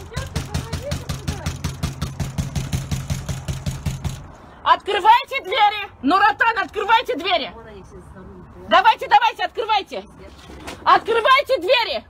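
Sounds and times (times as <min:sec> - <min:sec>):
glass door banging and rattling: 0:00.0 - 0:04.3.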